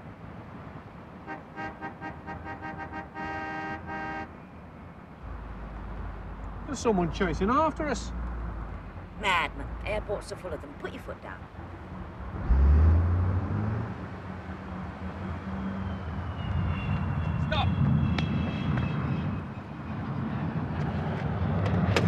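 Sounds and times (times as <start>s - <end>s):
car engine revving: 12.2s - 17.0s.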